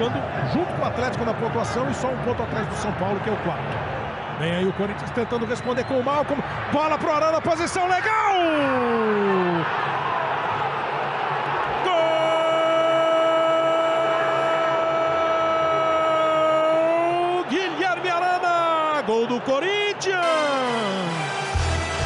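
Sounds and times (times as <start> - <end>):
stadium crowd cheering: 0.0 - 22.0
excited commentary: 4.4 - 9.8, 11.8 - 21.3
commentator's long held shout: 11.8 - 19.1.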